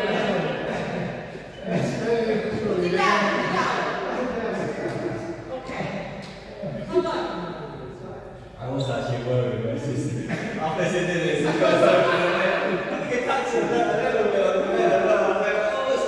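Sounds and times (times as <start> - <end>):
people talking in a hall: 0.0 - 16.0.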